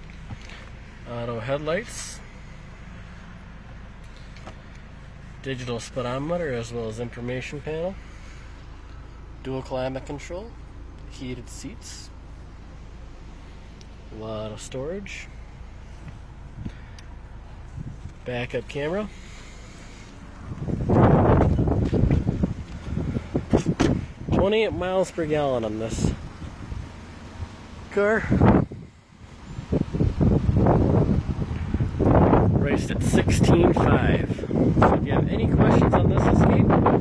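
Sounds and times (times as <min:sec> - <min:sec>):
car engine idling: 0:00.0 - 0:37.0
wind buffeting microphone: 0:17.5 - 0:18.2, 0:20.2 - 0:24.8, 0:25.9 - 0:37.0.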